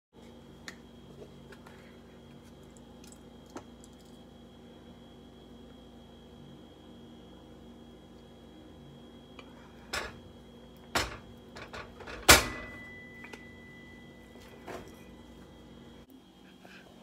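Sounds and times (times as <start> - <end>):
electrical hum with high whine: 0.2 - 17.0.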